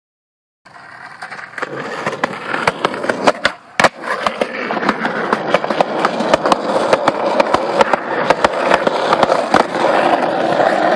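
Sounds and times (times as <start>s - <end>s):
sharp skateboard clicks: 0.7s - 10.9s
skateboard wheels rolling on concrete: 0.7s - 10.9s.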